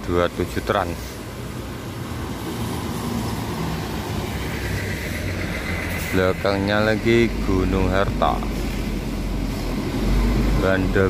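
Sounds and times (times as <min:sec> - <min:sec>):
coach driving past: 0:02.3 - 0:11.0.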